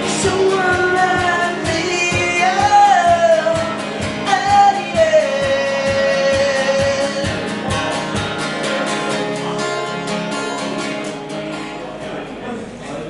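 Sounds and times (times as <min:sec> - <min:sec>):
man singing: 0:00.0 - 0:08.8
acoustic guitar strumming: 0:00.0 - 0:13.0.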